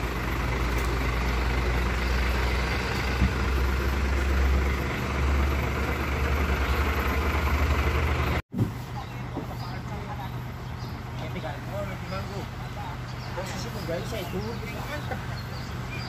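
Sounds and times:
diesel truck engine idling: 0.0 - 16.0.

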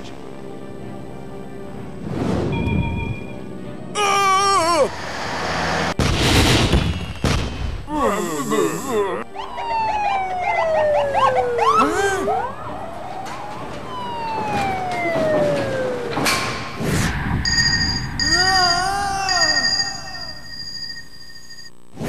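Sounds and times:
rush of noise: 4.9 - 6.5
police sirens wailing: 9.2 - 16.6.

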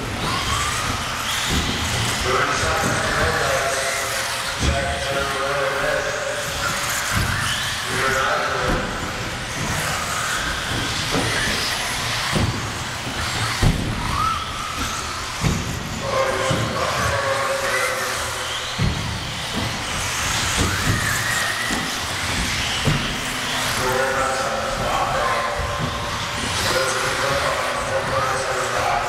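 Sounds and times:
rc cars knocking on landing: 0.0 - 5.1, 6.5 - 24.0
rc car motors whining: 0.0 - 29.0.

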